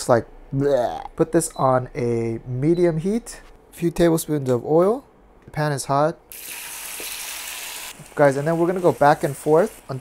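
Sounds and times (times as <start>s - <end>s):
tofu sizzling in hot oil: 6.3s - 9.8s.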